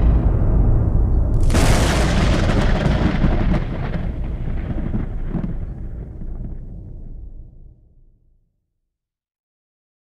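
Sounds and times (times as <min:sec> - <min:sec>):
thunder cracks: 0:00.0 - 0:07.8
thunder rumbling: 0:00.0 - 0:08.0
rain: 0:01.4 - 0:06.8.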